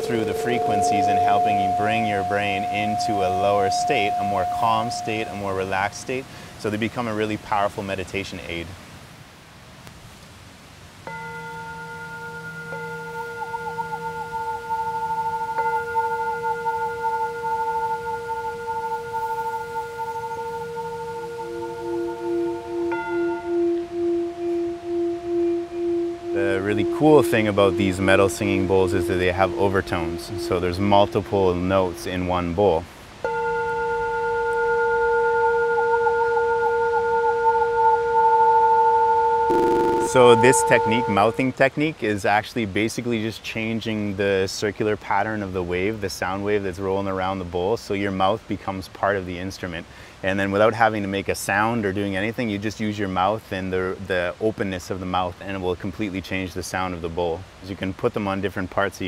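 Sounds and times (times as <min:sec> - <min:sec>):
metal singing bowl ringing: 0:00.0 - 0:06.2, 0:11.1 - 0:41.6
lower bowl tone pulsing: 0:00.0 - 0:06.8, 0:11.1 - 0:41.6.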